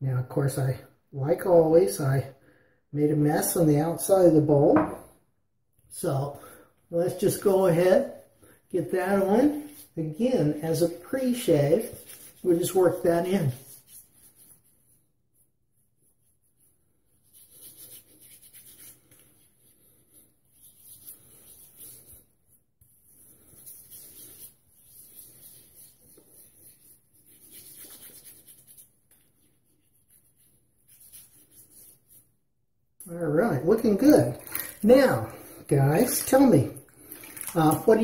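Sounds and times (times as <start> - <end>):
wet rubbing of lather on stubble: 8.8 - 32.4, 33.4 - 38.0.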